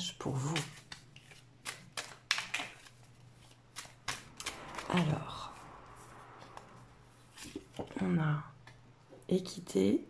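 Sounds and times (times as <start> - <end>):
cards being shuffled: 0.3 - 5.2.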